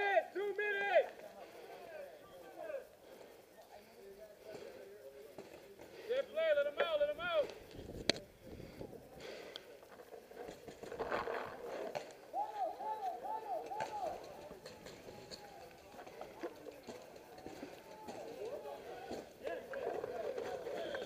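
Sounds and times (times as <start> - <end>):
distant shouting voices: 0.0 - 10.4, 11.5 - 21.0
faint sharp ticks: 9.4 - 9.7.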